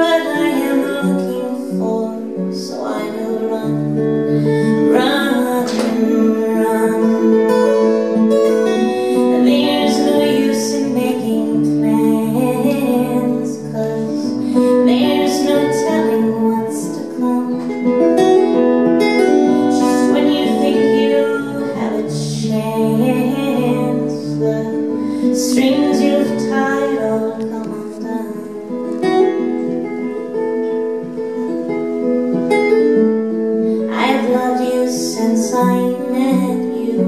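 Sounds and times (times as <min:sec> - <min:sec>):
woman singing: 0:00.0 - 0:30.4, 0:33.2 - 0:37.0
acoustic guitar chords: 0:00.0 - 0:37.0.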